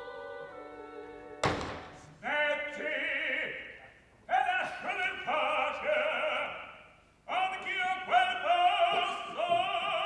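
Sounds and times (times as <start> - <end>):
opera orchestra with voice: 0.0 - 1.4, 2.2 - 10.0.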